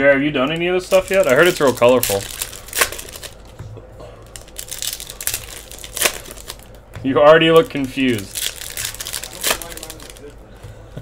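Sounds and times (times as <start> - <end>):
foil wrapper crinkling and tearing: 0.6 - 3.6, 4.2 - 10.3.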